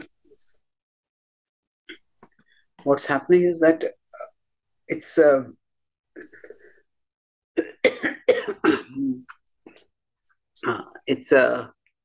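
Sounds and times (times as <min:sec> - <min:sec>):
man coughing: 0:07.6 - 0:09.2.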